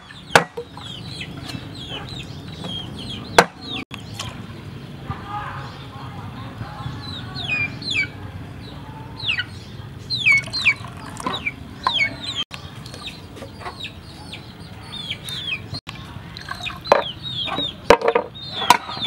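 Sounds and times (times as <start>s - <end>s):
chickens calling: 0.0s - 19.0s.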